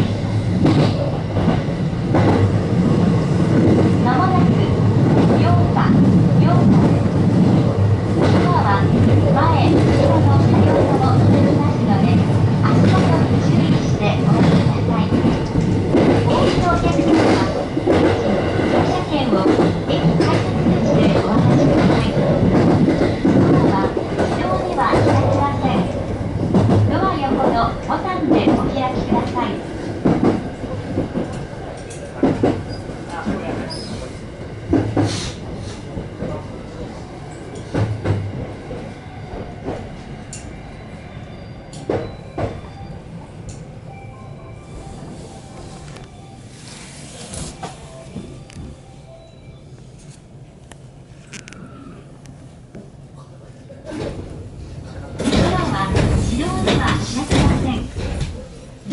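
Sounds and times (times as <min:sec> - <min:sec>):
train running rumble: 0:00.0 - 0:40.6, 0:53.9 - 0:58.9
people's voices: 0:04.0 - 0:30.0, 0:53.1 - 0:58.9
train wheels clacking over joints: 0:12.7 - 0:29.4.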